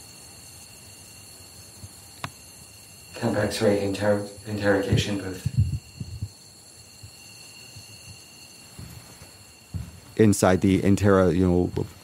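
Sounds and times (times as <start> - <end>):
faint steady hiss: 0.0 - 12.0
thin high whining tones: 0.0 - 12.0
soft low bumps: 8.7 - 10.4.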